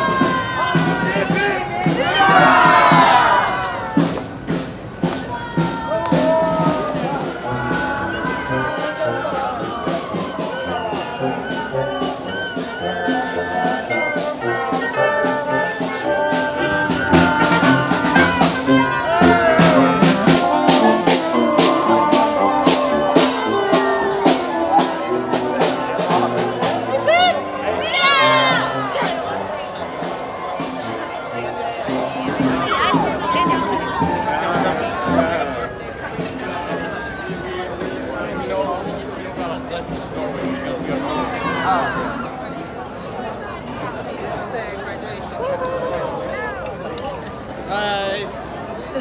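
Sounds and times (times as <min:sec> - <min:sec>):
marching wind band playing: 0:00.0 - 0:45.0
crowd chatter: 0:00.0 - 0:49.0.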